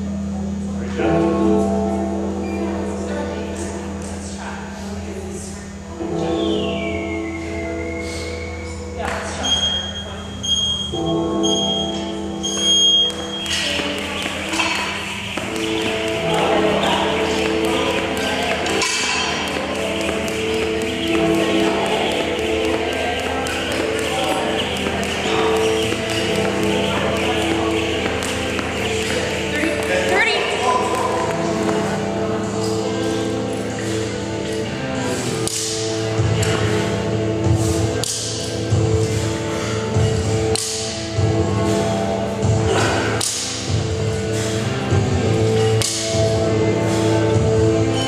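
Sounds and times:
interval timer beeps: 9.4 - 31.8
loud background music: 10.5 - 48.0.

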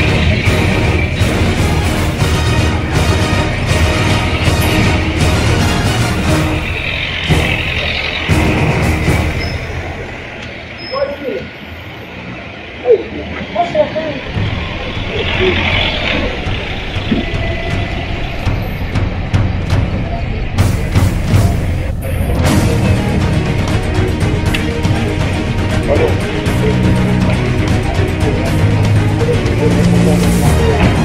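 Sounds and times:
background music: 0.0 - 10.8, 14.2 - 31.0
vehicle engine rumbling: 0.0 - 31.0
people calling out: 12.3 - 18.8, 19.9 - 31.0.

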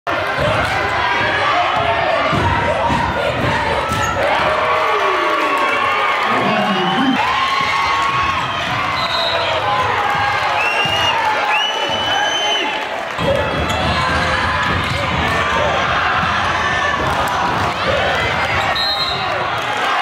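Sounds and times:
crowd shouting and cheering: 0.1 - 20.0.

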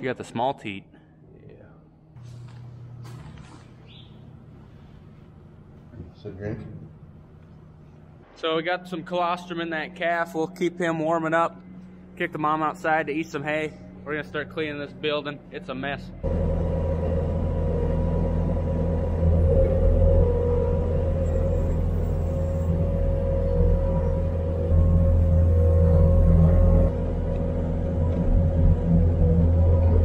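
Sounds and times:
diesel engine running: 16.1 - 30.0.

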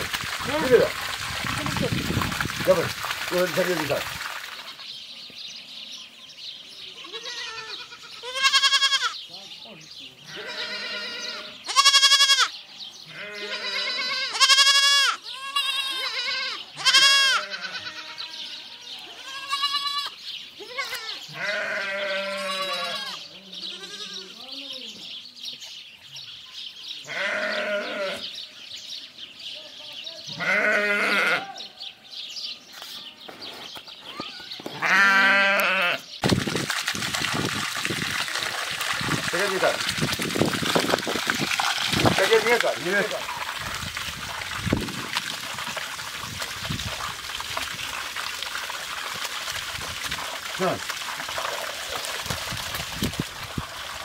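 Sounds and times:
young goats bleating: 6.8 - 9.3, 10.2 - 25.0, 27.0 - 28.4, 29.6 - 31.8, 34.1 - 36.2.

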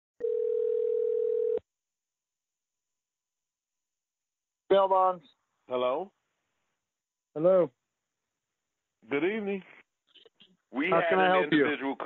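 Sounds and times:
telephone ringback tone: 0.2 - 1.6.

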